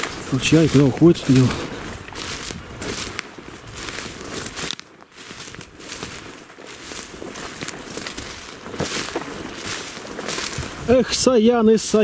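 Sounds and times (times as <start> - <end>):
footsteps through rustling shrubs: 0.0 - 12.0.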